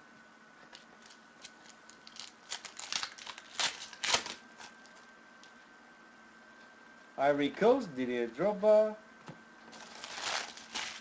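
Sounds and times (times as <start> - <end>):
foil pack tearing and crinkling: 1.0 - 4.9, 9.7 - 11.0.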